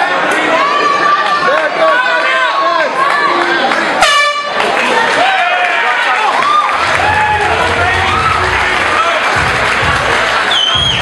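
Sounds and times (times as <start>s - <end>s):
crowd shouting: 0.0s - 11.0s
air horn blast: 4.0s - 4.6s.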